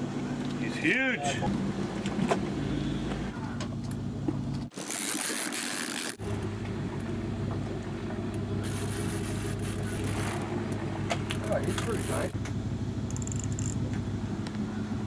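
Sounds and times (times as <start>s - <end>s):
boat engine droning: 4.8s - 15.0s.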